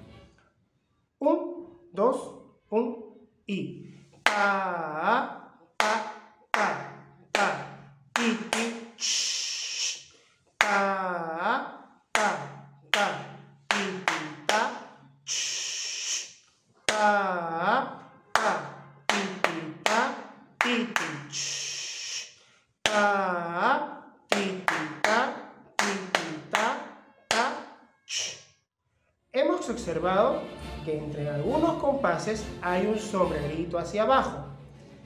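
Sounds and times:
man chanting rhythm syllables: 0:03.5 - 0:28.4
man making shh sounds: 0:08.2 - 0:10.3, 0:15.2 - 0:16.6, 0:20.8 - 0:22.5, 0:28.1 - 0:28.5.

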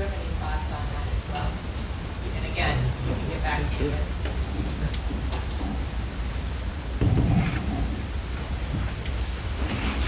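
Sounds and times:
meeting room background rumble: 0:00.0 - 0:10.0
muffled low thump: 0:07.0 - 0:07.5.

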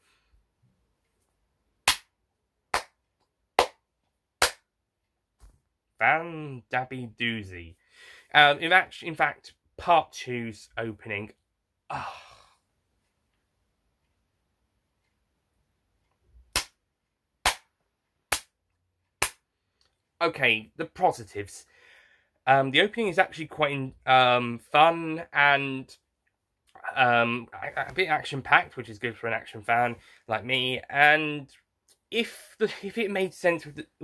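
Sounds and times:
slow hand claps: 0:01.9 - 0:02.1, 0:02.7 - 0:03.0, 0:03.6 - 0:03.8, 0:04.4 - 0:04.7, 0:18.3 - 0:18.6, 0:19.2 - 0:19.4.

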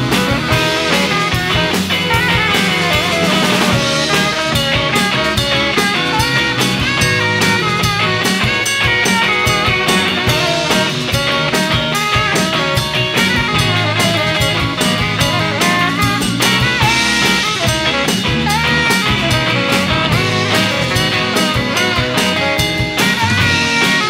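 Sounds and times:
bass guitar: 0:00.0 - 0:24.0
drum kit beat: 0:00.0 - 0:24.0
electric guitar: 0:00.0 - 0:24.0
saxophone: 0:00.0 - 0:24.0.

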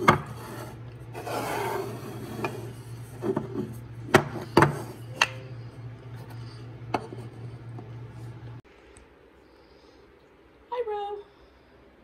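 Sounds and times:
wooden block scraping across counter: 0:00.0 - 0:03.8
steady low hum: 0:00.0 - 0:12.0.

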